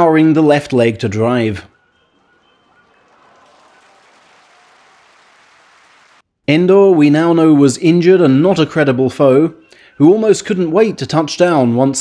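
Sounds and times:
faint crowd applause: 1.7 - 6.2.

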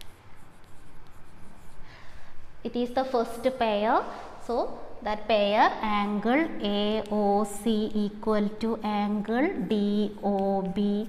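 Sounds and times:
chalk writing on blackboard: 0.0 - 3.6.

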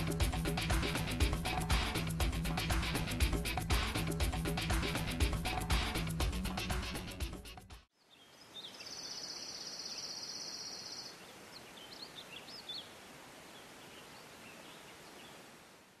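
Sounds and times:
bird chirps: 8.0 - 12.9.

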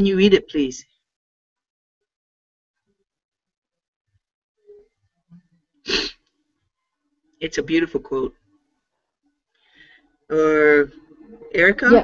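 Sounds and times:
person sneezing: 5.9 - 6.2.

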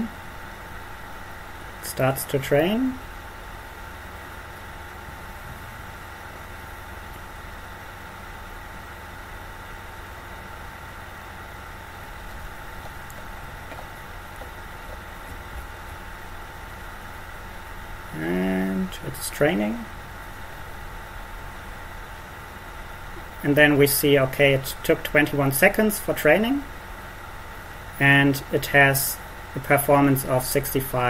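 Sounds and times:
faint constant whine: 0.0 - 31.0
room hum and hiss: 0.0 - 31.0.

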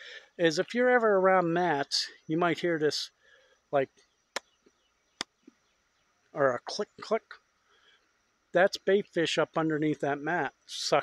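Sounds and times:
man making sharp clicks: 4.3 - 5.6.

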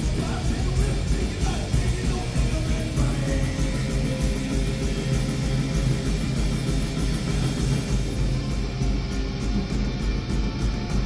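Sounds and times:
bass guitar: 0.0 - 11.0
drums fast beat: 0.0 - 11.0
electric guitar: 0.0 - 11.0.

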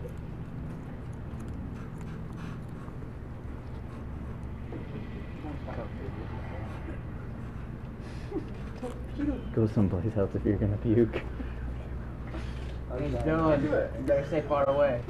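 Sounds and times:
faint voices murmuring: 0.0 - 15.0
low room hum: 0.0 - 15.0.

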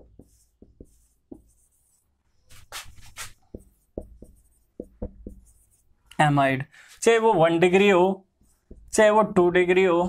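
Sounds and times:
marker pen writing on whiteboard: 0.0 - 6.0, 8.3 - 9.1.

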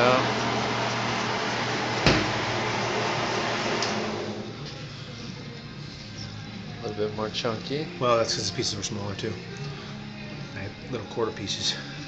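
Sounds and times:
food shredder motor whirring: 0.0 - 4.6.

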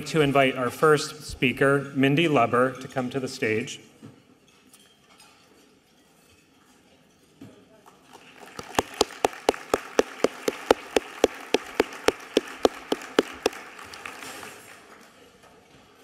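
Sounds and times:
close evenly spaced handclaps: 8.5 - 14.1
audience applause: 8.6 - 14.2.

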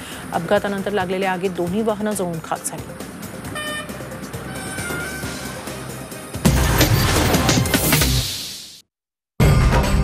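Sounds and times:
road traffic noise: 0.0 - 8.3
background music: 0.0 - 8.6
vehicle horn toot: 3.5 - 5.7.

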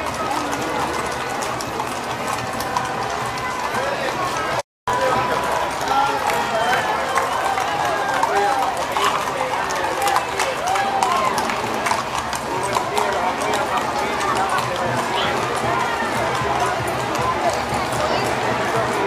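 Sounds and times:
crowd chattering: 0.0 - 19.0
hooves clip-clopping on pavement: 0.0 - 19.0.

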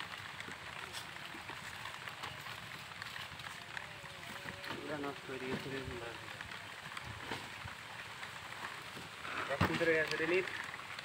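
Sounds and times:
background hiss: 0.0 - 11.0
small crackles: 0.0 - 11.0.

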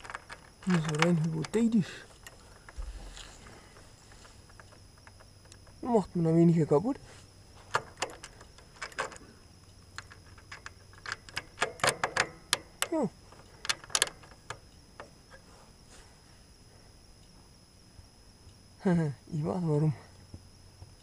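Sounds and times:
small metallic clicks and taps: 0.0 - 5.8, 7.6 - 15.4.

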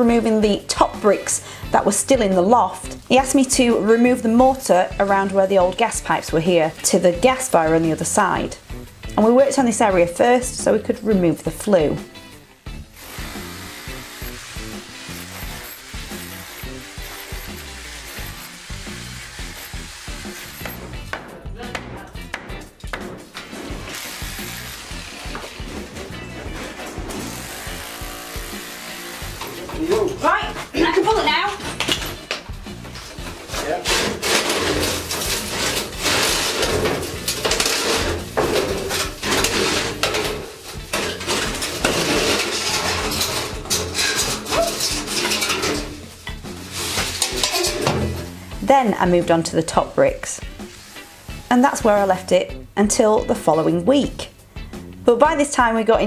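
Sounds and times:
background music: 0.0 - 56.0
hammer drill chipping mortar: 13.0 - 20.9, 23.8 - 29.8
clattering metallic scraping: 13.0 - 21.0, 32.8 - 48.7.

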